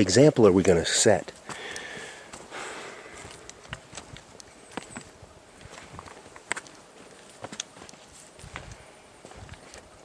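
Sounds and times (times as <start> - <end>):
boots crunching on rocky trail: 1.3 - 10.0.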